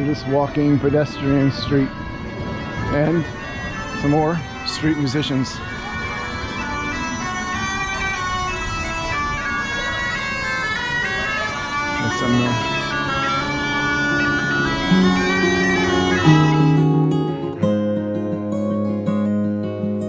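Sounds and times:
bagpipe playing a melody: 0.0 - 19.3
strummed acoustic guitar music: 11.6 - 20.0.

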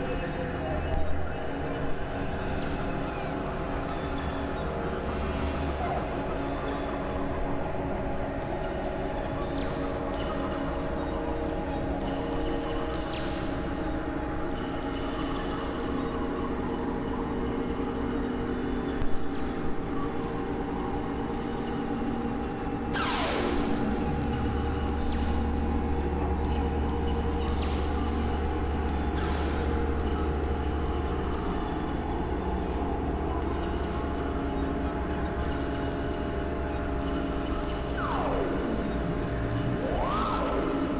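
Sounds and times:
electronic drones: 0.0 - 40.9
deep bass drone: 22.1 - 40.9
downward synth sweep: 23.0 - 25.6, 37.9 - 40.9.

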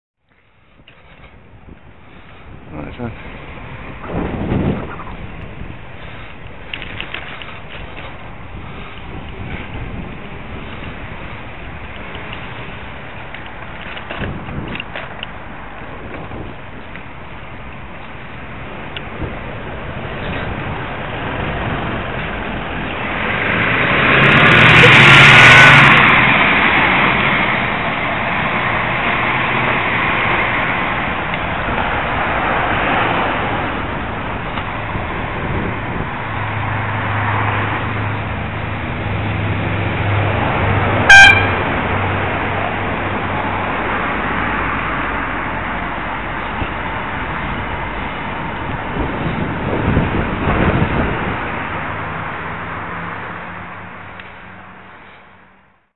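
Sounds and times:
road traffic: 0.2 - 55.9
vehicle passing close: 0.5 - 55.8
wind rushing: 1.4 - 45.2, 46.2 - 53.3
car horn toot: 41.0 - 41.6.

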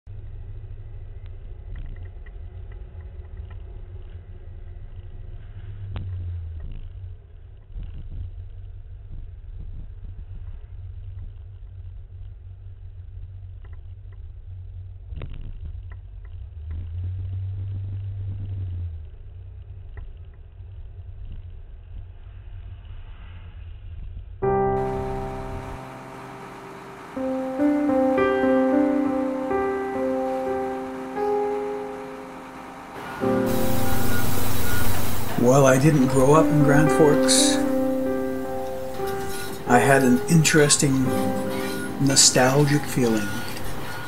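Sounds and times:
car rumbling on road: 24.7 - 44.0.

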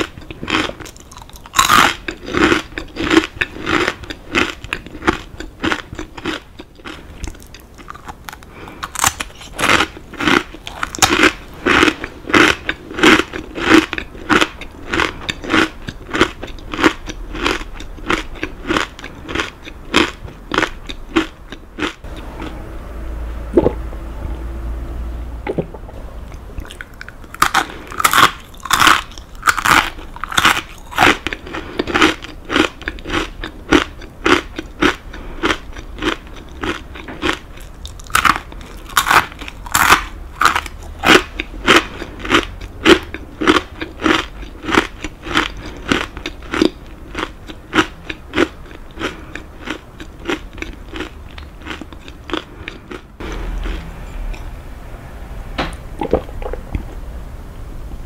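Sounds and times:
chewing crunchy crackers: 0.0 - 22.5, 26.3 - 54.5.

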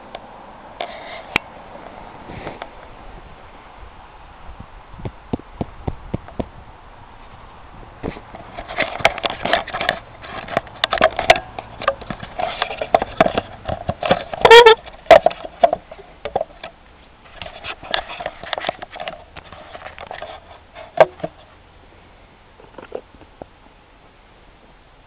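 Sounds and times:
loud squeaky pitched sound: 14.4 - 14.8.

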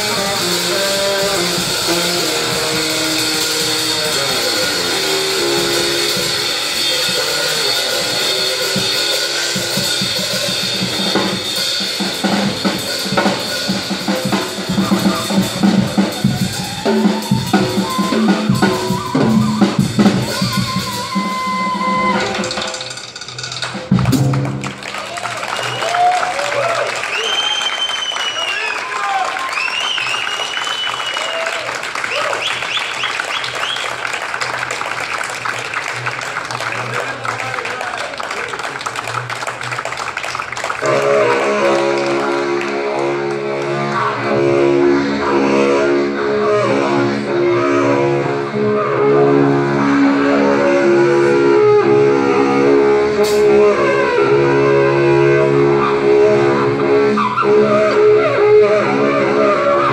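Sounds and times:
low droning wind instrument: 0.0 - 22.2, 40.8 - 59.9
crowd applauding: 0.0 - 44.3
whistles and shouts: 16.4 - 22.3, 25.5 - 26.3, 27.0 - 34.3.

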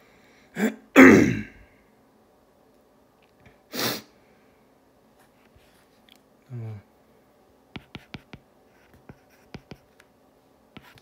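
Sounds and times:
person coughing: 0.6 - 1.7.

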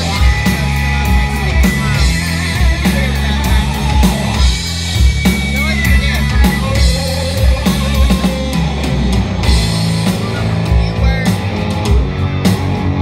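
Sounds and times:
bass guitar: 0.0 - 13.0
drum kit steady beat: 0.0 - 13.0
electric guitar lead lines: 0.0 - 13.0.

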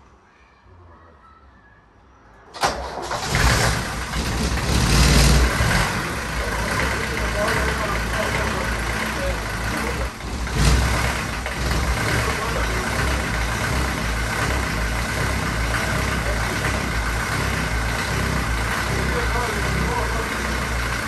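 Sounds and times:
diesel engine idling: 2.6 - 21.0.

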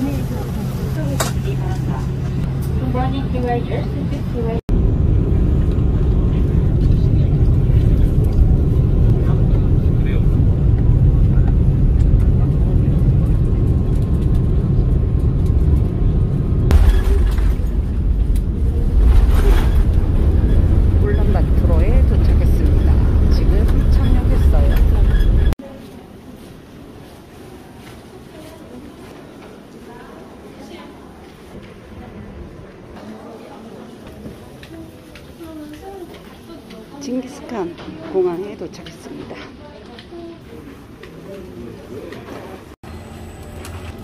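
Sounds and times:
aircraft engine rumble: 0.0 - 25.6
indistinct passenger voices: 0.0 - 44.0.

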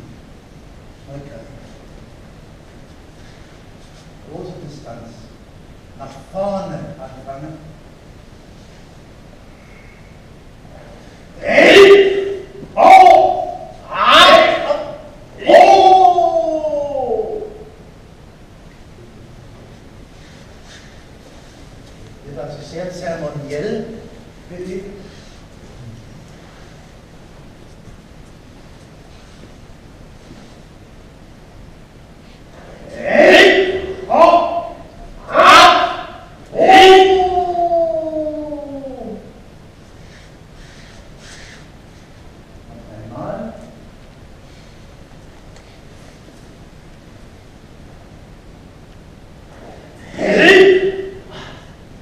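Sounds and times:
man shouting: 11.4 - 17.8, 32.8 - 39.4, 50.0 - 51.7.

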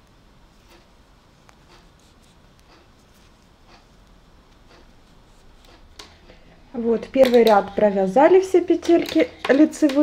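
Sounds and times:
knitting needles scraping: 0.5 - 6.4.

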